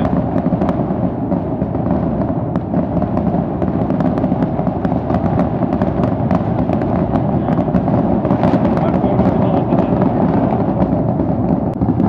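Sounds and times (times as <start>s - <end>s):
fireworks crackling pops: 0.0s - 12.0s
fireworks shell bursts rumbling: 0.0s - 12.0s.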